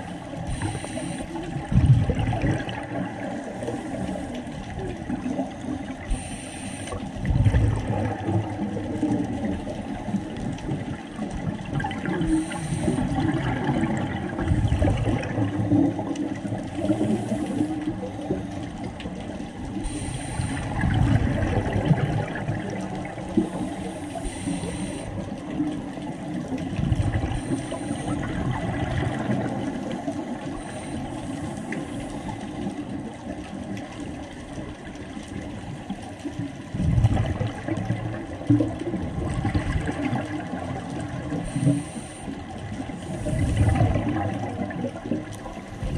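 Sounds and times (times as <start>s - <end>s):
exhaled air bubbling underwater: 0.0s - 45.9s.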